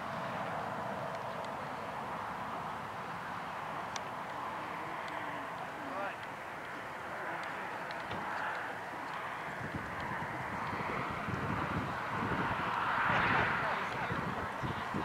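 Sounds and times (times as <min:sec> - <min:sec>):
rushing background noise: 0:00.0 - 0:15.0.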